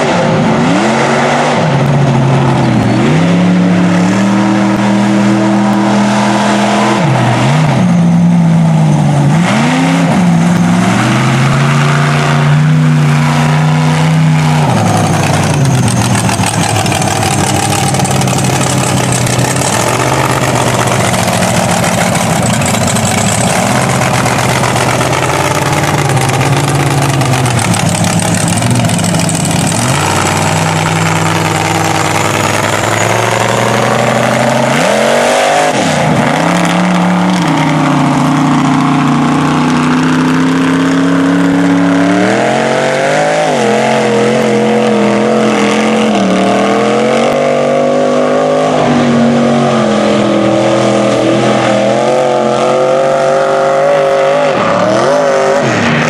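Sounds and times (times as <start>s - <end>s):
truck engine revving: 0.0s - 56.0s.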